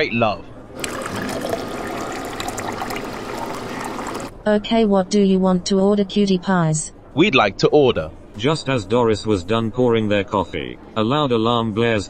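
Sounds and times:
coffee pouring into a cup: 0:00.8 - 0:04.3.

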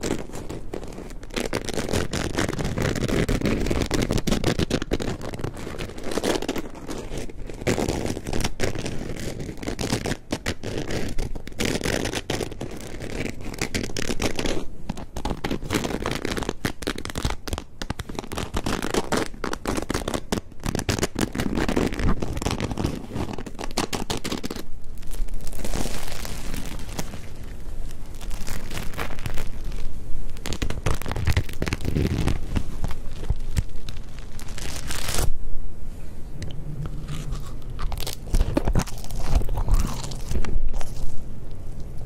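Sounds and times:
bread crust crackling: 0:00.0 - 0:35.4, 0:36.9 - 0:41.2.

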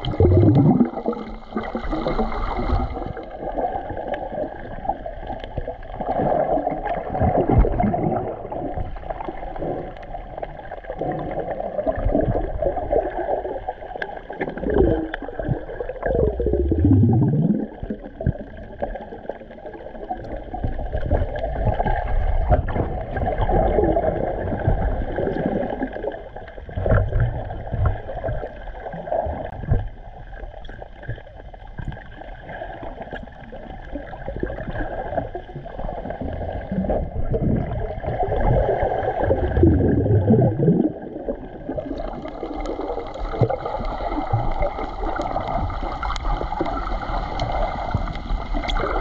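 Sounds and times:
bubbles: 0:00.0 - 0:49.0
underwater gurgling and rushing: 0:00.0 - 0:49.0.

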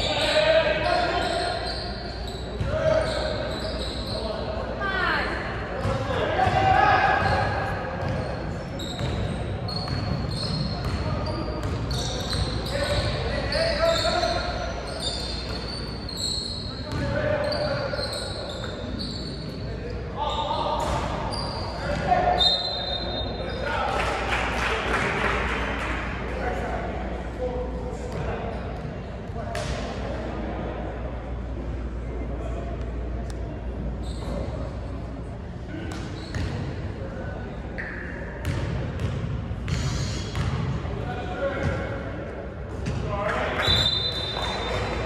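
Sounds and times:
sneakers squeaking: 0:00.0 - 0:23.8, 0:33.3 - 0:45.0
basketball bouncing: 0:09.9 - 0:11.8, 0:38.4 - 0:40.6.

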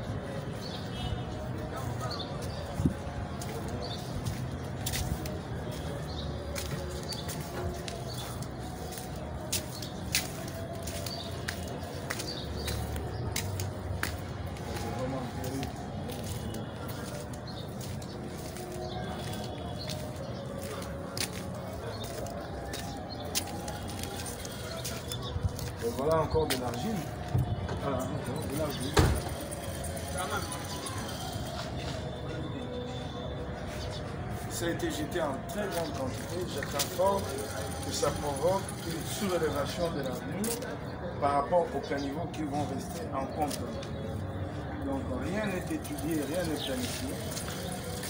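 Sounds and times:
faint distant voices: 0:00.0 - 0:48.0
footsteps on dirt: 0:02.3 - 0:32.2.

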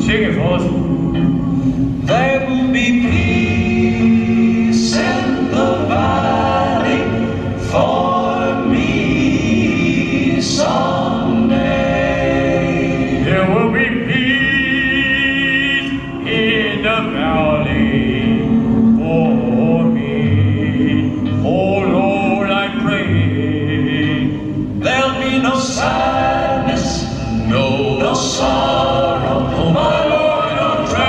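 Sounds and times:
instrumental backing: 0:00.0 - 0:31.0
choir singing long held notes: 0:01.1 - 0:31.0.

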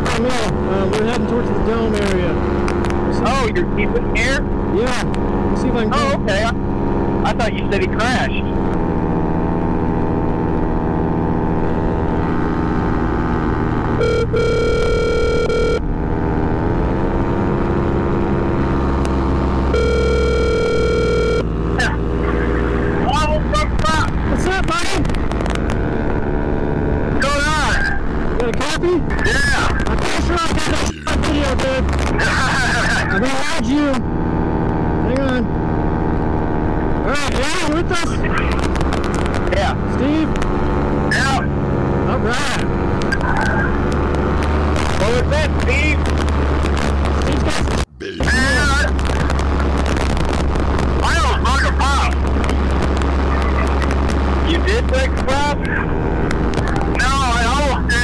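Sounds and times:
paramotor engine running: 0:00.0 - 0:58.0
voices over intercom: 0:07.3 - 0:08.5, 0:21.8 - 0:25.0, 0:27.2 - 0:33.7, 0:37.1 - 0:38.6, 0:47.3 - 0:49.3, 0:53.3 - 0:53.9
electronic beep tone: 0:14.0 - 0:15.8, 0:19.7 - 0:21.5.

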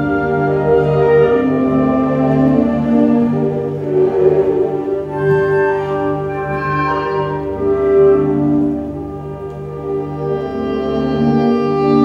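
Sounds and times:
orchestral music with held notes: 0:00.0 - 0:12.0.

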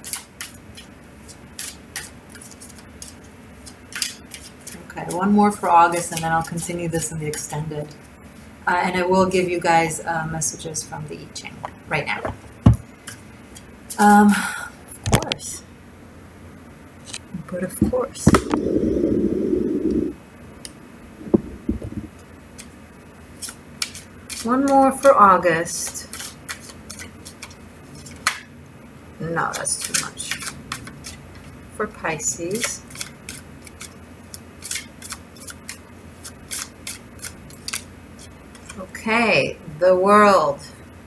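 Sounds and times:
cards being shuffled: 0:32.9 - 0:37.9.

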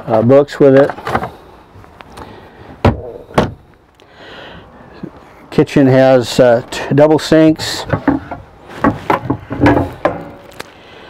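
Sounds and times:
wooden cabinet doors thunking shut: 0:02.8 - 0:03.6.

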